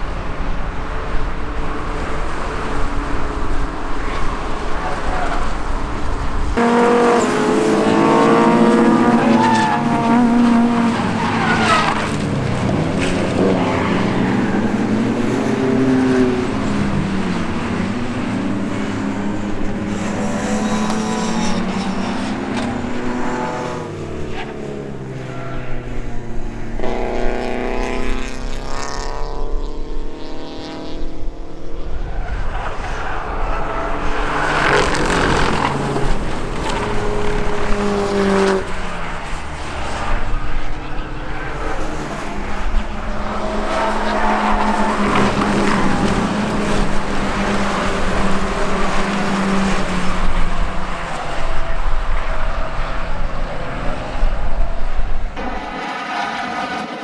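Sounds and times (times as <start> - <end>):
racing car engines passing: 0.0 - 57.0
rush of noise: 38.7 - 57.0.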